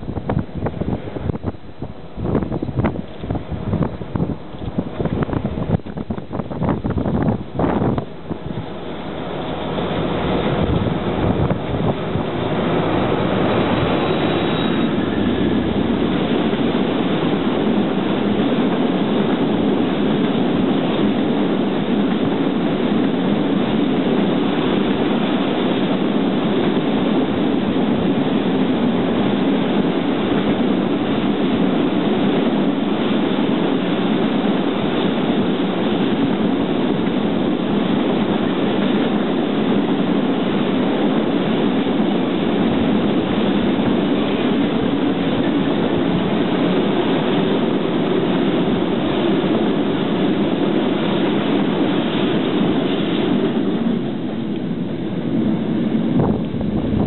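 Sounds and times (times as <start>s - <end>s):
train wheels rumbling on track: 0.0s - 57.0s.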